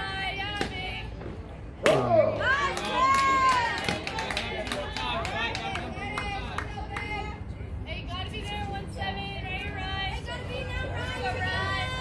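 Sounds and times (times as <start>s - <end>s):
players shouting and cheering: 1.8s - 7.4s.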